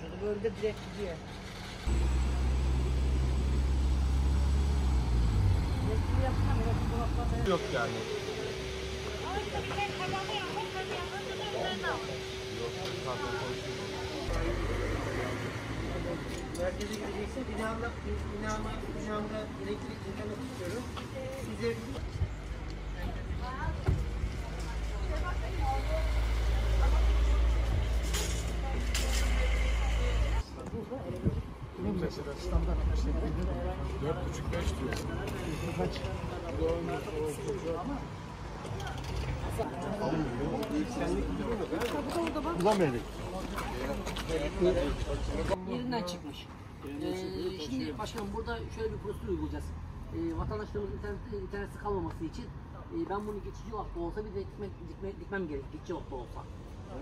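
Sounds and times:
large vehicle engine droning: 0.9 - 19.6, 22.4 - 30.5.

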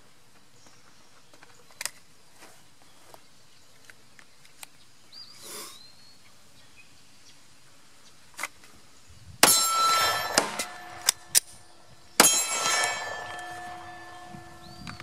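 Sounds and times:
pistol shots: 9.4 - 11.6
metallic ringing: 9.4 - 15.0.

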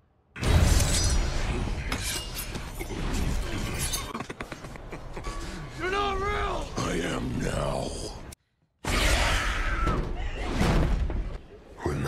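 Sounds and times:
crash: 0.4 - 4.0.

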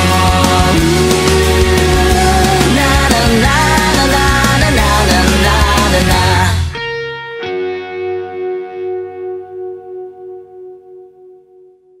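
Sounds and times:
rock band final hit: 0.0 - 7.9
electric guitar chord ringing: 0.0 - 12.0.

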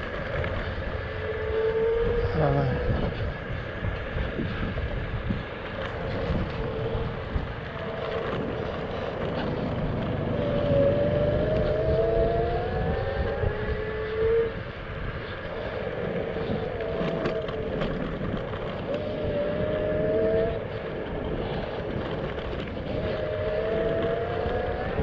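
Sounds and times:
electric scooter motor whining: 0.0 - 25.0
wind rumble on microphone: 0.0 - 25.0.

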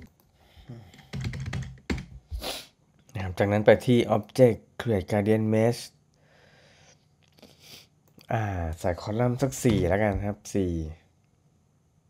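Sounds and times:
computer keyboard keys clicking: 0.9 - 2.2.

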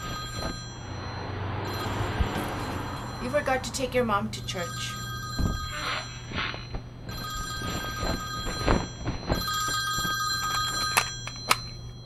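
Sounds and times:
telephone ringing: 0.0 - 12.0.

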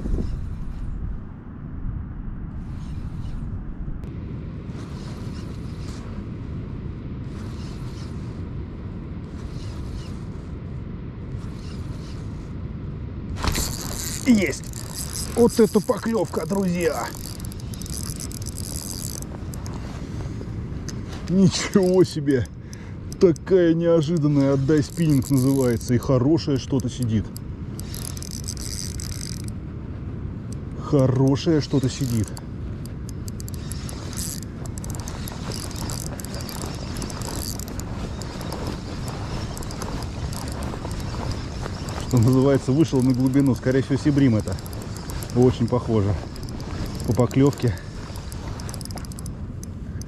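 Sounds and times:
fishing reel drag buzzing: 4.8 - 6.0, 7.3 - 8.3, 9.3 - 10.3, 11.3 - 12.5, 13.4 - 22.5, 23.1 - 29.6, 31.2 - 50.0.

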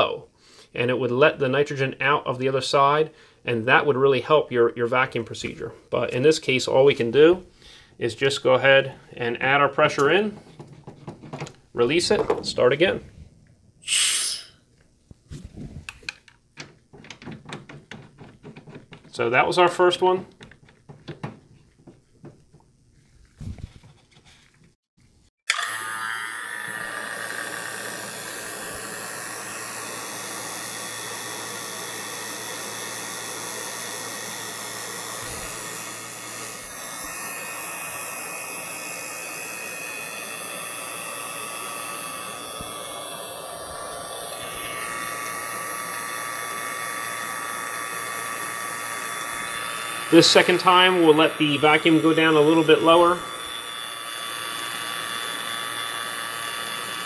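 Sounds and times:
vacuum pump running: 15.4 - 24.0, 25.5 - 57.0.

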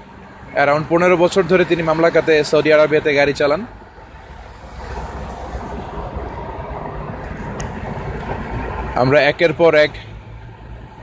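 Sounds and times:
car cabin road rumble: 4.7 - 9.2.

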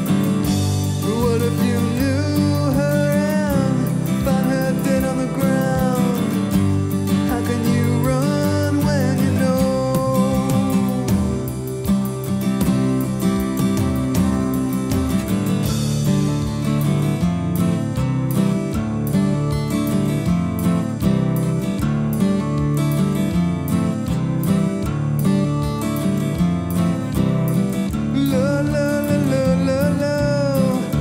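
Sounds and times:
strummed acoustic guitar: 0.0 - 31.0.

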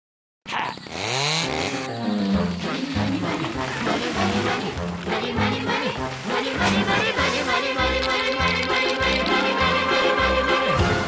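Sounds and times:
chainsaw starting and revving: 0.8 - 1.9.

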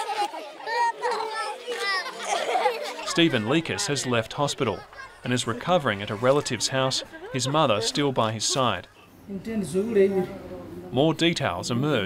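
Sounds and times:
children chattering and calling out: 0.0 - 9.2.

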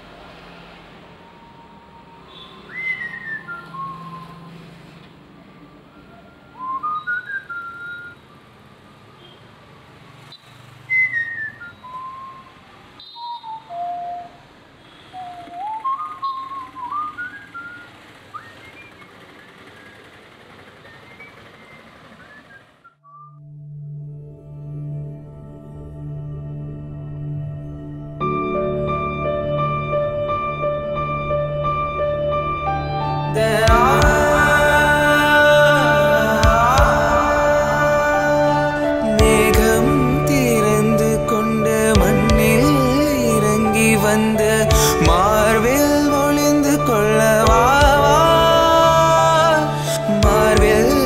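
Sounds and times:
person whistling a tune: 13.0 - 14.4, 15.1 - 17.9
soft music: 23.4 - 51.0.

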